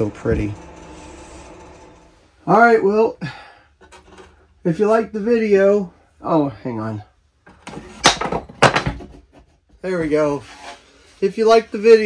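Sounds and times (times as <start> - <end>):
wood scraping and knocking: 3.8 - 4.4, 7.4 - 11.6.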